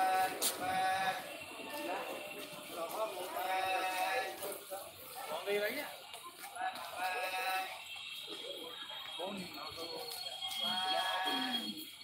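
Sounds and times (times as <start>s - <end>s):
voices singing: 0.0s - 5.2s, 6.4s - 12.0s
crowd chatter: 0.0s - 12.0s.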